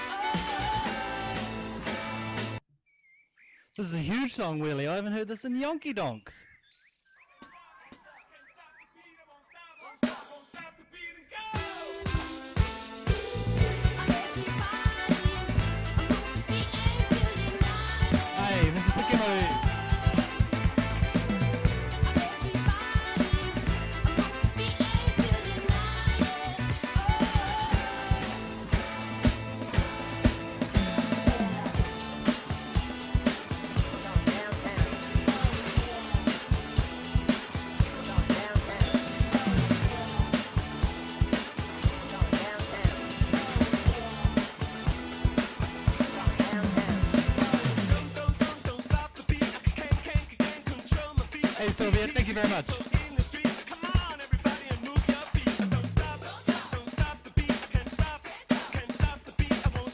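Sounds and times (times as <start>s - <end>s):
dance-pop backing track: 0.0s - 2.6s, 11.6s - 59.9s
electronic drum kit beat: 10.0s - 10.6s, 11.6s - 59.9s.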